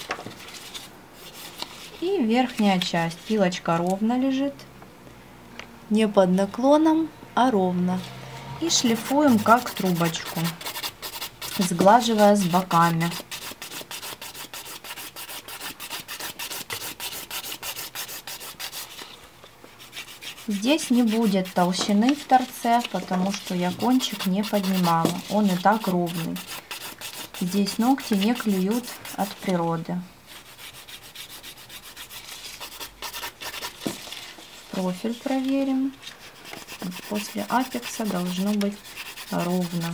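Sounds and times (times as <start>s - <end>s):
nail file rasping: 8.9s - 19.0s, 19.8s - 22.6s, 23.4s - 29.4s, 30.4s - 33.8s, 36.4s - 39.9s.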